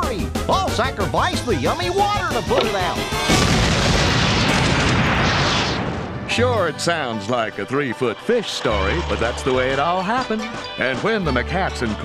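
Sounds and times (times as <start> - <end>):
cartoon explosion with long rumble: 3.2 - 6.3.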